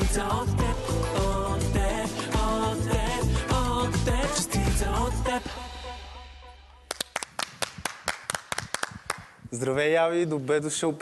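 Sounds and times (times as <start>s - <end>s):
hand clapping: 6.9s - 9.4s.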